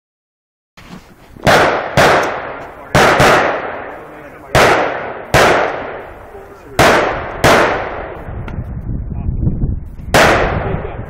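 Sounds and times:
rifle shots with echo: 1.4 - 8.4, 10.1 - 11.0.

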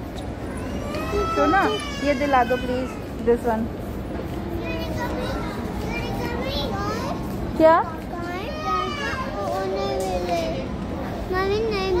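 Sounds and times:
steady background hum: 0.0 - 12.0
young children talking and calling: 0.0 - 12.0.

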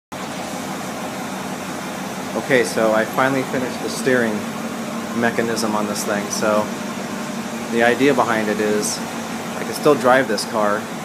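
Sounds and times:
mechanical hum with hiss: 0.2 - 11.0.

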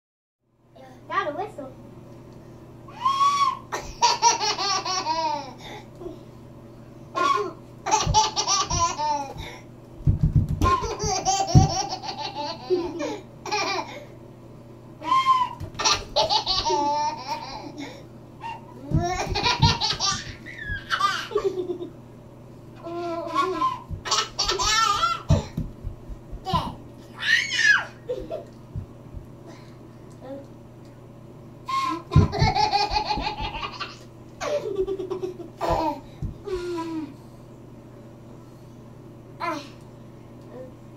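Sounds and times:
bare feet thumping on floor: 8.0 - 11.9, 18.9 - 21.0, 23.8 - 26.8, 28.1 - 29.3, 32.1 - 33.8, 35.6 - 36.8
toddler giggling: 15.8 - 18.0, 22.8 - 25.6, 32.1 - 37.2.

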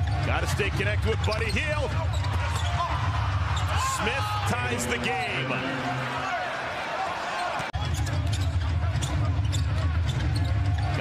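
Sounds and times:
crowd noise: 0.0 - 11.0
sneaker squeaks on court: 1.2 - 2.8, 7.4 - 11.0.

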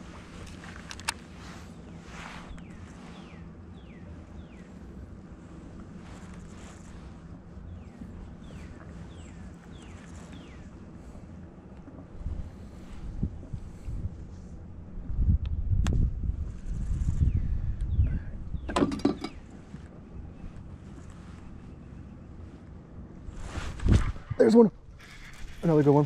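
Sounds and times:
wind rumble on microphone: 0.0 - 26.0
faint high bird chirps: 2.5 - 4.9.

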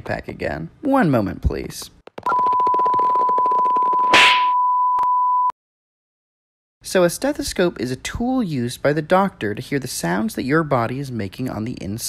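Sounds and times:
high beep tone: 2.3 - 5.5.

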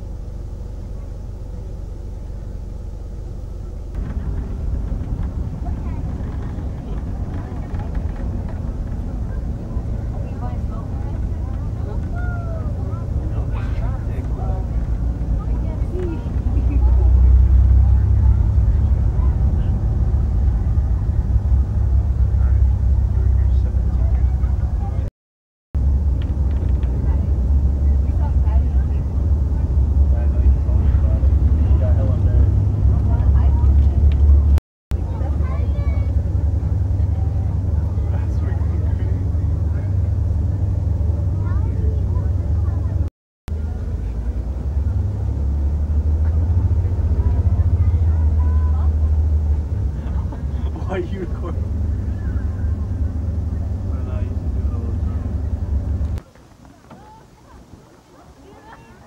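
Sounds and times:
car rumble from inside cabin: 0.0 - 25.1, 25.8 - 56.2
indistinct voices: 3.8 - 25.1.

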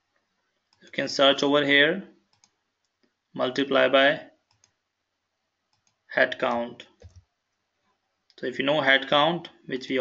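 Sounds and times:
faint mouse clicks: 0.2 - 1.0, 2.2 - 3.2, 4.4 - 4.8, 5.7 - 8.4
man speaking: 0.8 - 2.2, 3.4 - 4.4, 6.1 - 7.0, 8.4 - 10.0.

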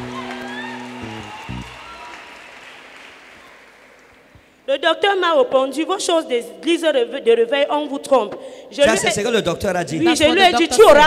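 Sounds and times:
keyboard playing held chords: 0.0 - 1.8
congregation applause: 0.0 - 4.6.

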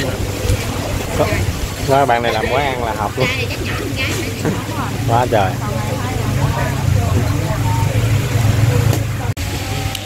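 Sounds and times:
people chattering: 0.0 - 10.0
road traffic rumble: 0.0 - 10.0.

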